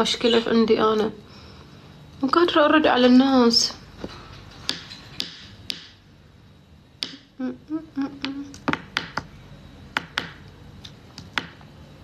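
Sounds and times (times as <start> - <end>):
pen tapping on hard surface: 8.2 - 9.2, 10.0 - 10.4.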